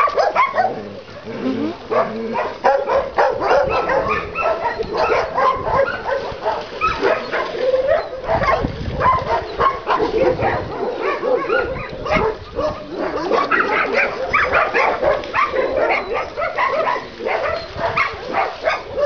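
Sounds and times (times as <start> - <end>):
dogs barking: 0.0 - 19.0.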